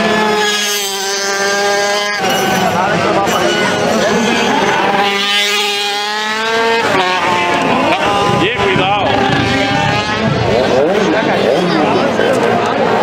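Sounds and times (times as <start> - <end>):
motorcycle engine revving: 0.0 - 12.4
crowd chatter: 0.0 - 13.0.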